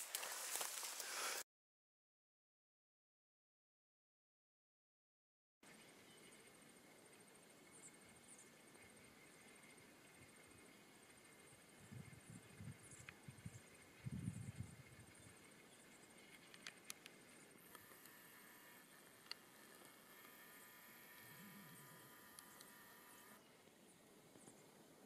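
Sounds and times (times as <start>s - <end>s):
faint high buzz: 5.7s - 25.0s
faint clicks: 16.1s - 24.7s.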